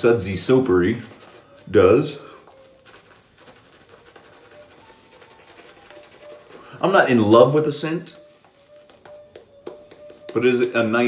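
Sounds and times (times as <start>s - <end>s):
shaving brush swishing lather: 0.0s - 8.4s.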